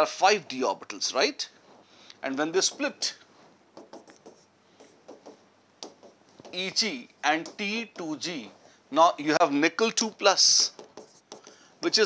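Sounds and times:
pen tapping and scratching on board: 2.6s - 3.1s, 3.8s - 6.7s, 7.3s - 8.7s, 10.4s - 11.6s.

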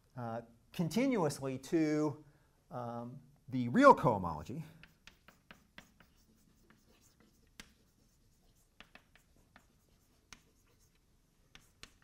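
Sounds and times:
chalk tapping and scraping on blackboard: 4.7s - 12.0s.

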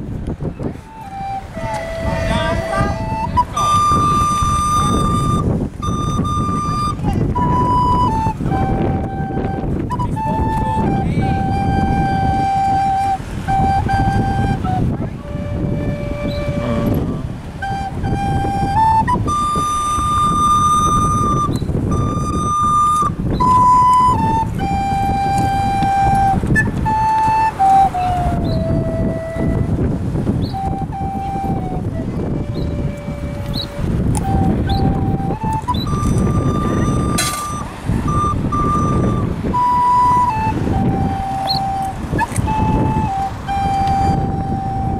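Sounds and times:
street traffic rumbling: 0.0s - 44.9s
tin whistle playing slow tune: 0.8s - 44.9s.

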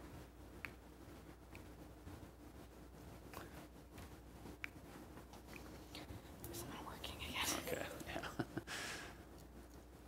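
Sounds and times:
person whispering: 5.9s - 8.4s
breath noise: 8.7s - 9.3s.

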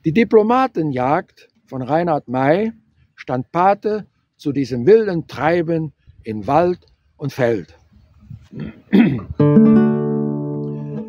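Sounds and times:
person laughing briefly: 8.5s - 9.4s
classical guitar chord strummed: 9.4s - 11.0s.

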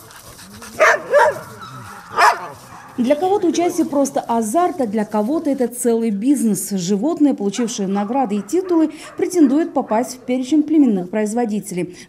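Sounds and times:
dogs barking: 0.0s - 4.1s, 7.4s - 10.5s.

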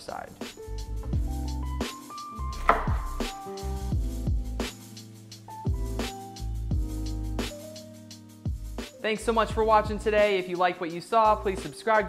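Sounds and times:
electronic music with kick drum: 0.4s - 10.6s
knife cutting on wooden board: 2.6s - 3.2s.

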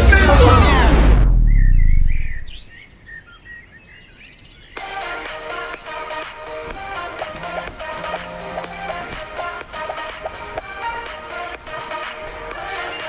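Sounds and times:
background music: 0.0s - 1.4s, 4.8s - 13.0s
faint bird-like chirps: 1.4s - 6.7s.

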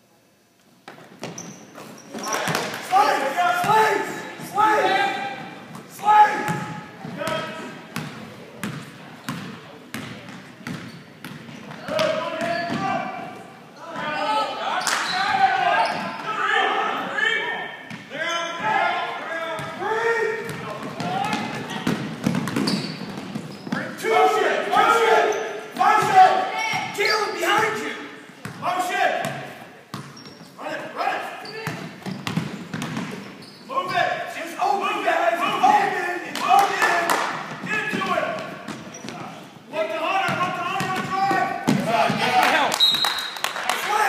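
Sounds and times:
indistinct shouting and talk: 2.1s - 8.0s, 11.7s - 22.2s, 23.7s - 29.9s, 30.6s - 32.0s, 33.6s - 44.0s
basketball bouncing on hardwood: 20.5s - 23.8s, 31.6s - 33.2s.

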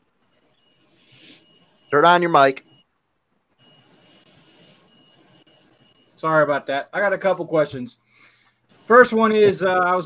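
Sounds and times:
thin high whine: 0.2s - 2.9s, 3.5s - 7.6s.

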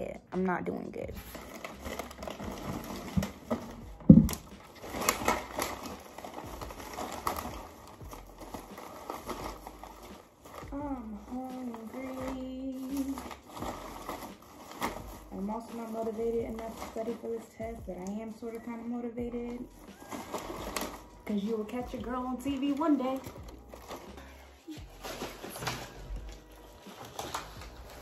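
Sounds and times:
plastic bag rustling: 1.0s - 28.0s.

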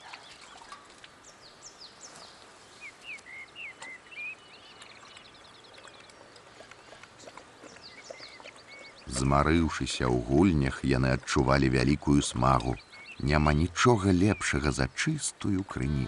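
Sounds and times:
faint birdsong: 0.0s - 16.0s
light outdoor hiss: 0.0s - 16.0s
bird trill: 2.8s - 6.1s.

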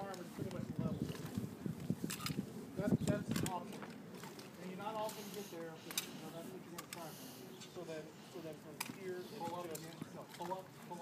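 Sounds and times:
sharp clicks: 3.3s - 5.2s
people talking: 4.6s - 11.0s.

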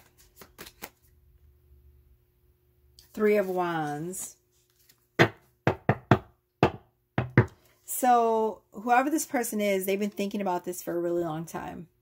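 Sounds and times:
sharp knocks: 5.2s - 7.5s.

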